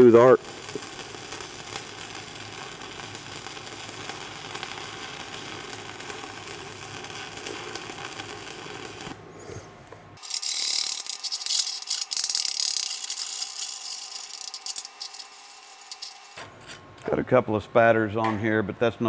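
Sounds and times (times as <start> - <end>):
stick welding arc crackle: 0.0 - 9.3, 10.2 - 16.8.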